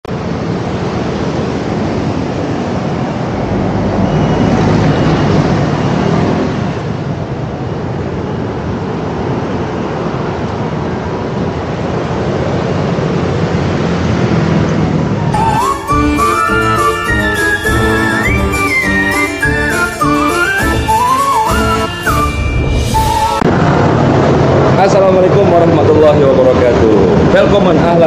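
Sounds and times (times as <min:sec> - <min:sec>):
cars and buses passing: 0:00.0 - 0:28.0.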